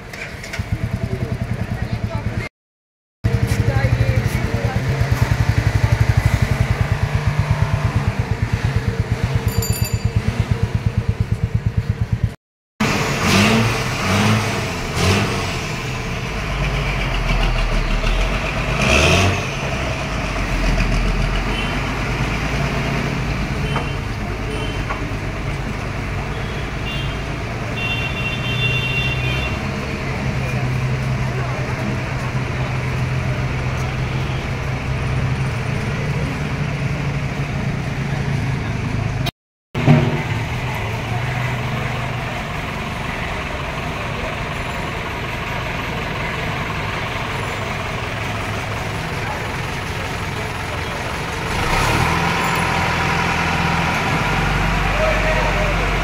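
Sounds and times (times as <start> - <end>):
traffic engine hum: 0.0 - 2.5, 3.2 - 56.0.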